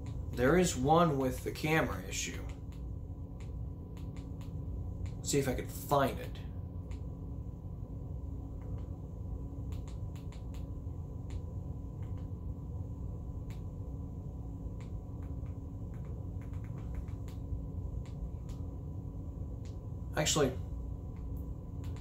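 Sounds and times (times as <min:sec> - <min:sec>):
faint constant tone: 0:00.0 - 0:22.0
low hum: 0:00.0 - 0:22.0
light clicks: 0:02.3 - 0:05.2, 0:09.7 - 0:12.4, 0:14.8 - 0:18.7, 0:21.1 - 0:22.0.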